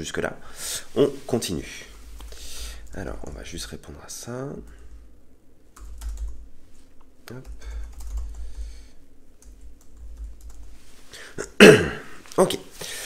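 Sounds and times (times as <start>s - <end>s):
loud cough: 11.4s - 12.2s.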